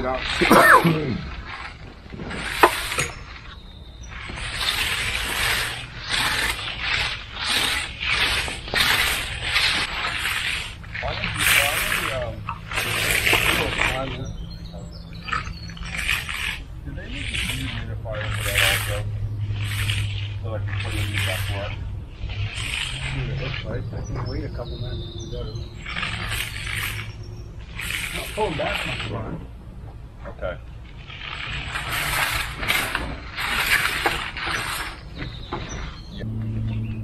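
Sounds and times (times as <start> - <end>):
float rasping over concrete: 0.0 - 37.0
person coughing: 0.4 - 1.2.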